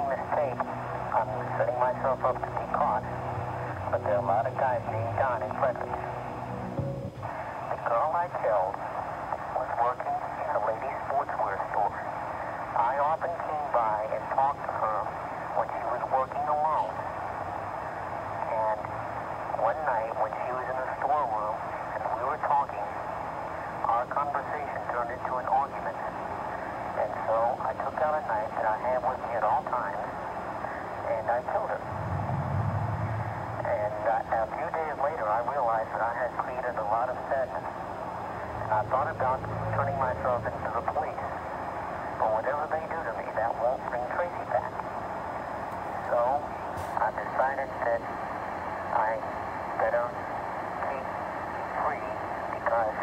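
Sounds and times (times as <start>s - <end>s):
man speaking over a phone line: 0.0s - 3.2s, 3.8s - 6.0s, 23.8s - 26.1s, 31.0s - 31.8s, 38.6s - 41.4s, 48.9s - 50.1s
tape hiss: 0.0s - 53.0s
brief low rumble: 31.8s - 33.7s.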